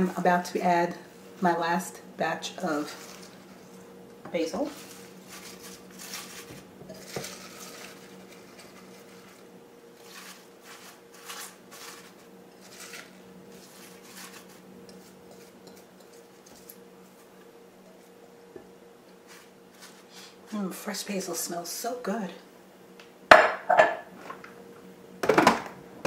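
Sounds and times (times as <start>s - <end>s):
faint steady hum: 0.0s - 26.0s
leaves rustling in plastic bowl: 2.6s - 17.4s, 19.2s - 20.8s.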